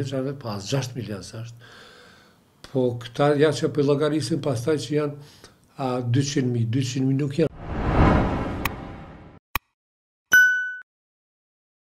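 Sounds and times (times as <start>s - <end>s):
swish: 7.5s - 9.4s
short electronic ding: 10.3s - 10.8s.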